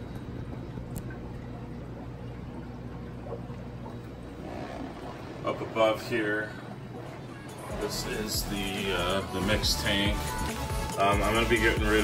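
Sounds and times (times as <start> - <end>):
aquarium pumps humming: 0.0 - 12.0
water trickling: 0.0 - 12.0.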